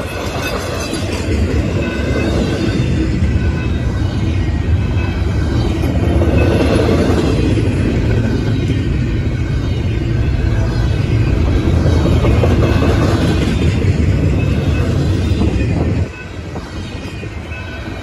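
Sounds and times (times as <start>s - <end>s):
freight train wheels rumbling: 0.0s - 18.0s.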